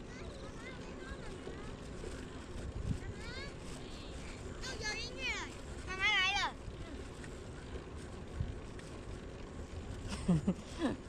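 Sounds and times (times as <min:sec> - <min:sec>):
bicycle rolling on pavement: 0:00.0 - 0:11.0
wind rushing over microphone: 0:02.5 - 0:03.4.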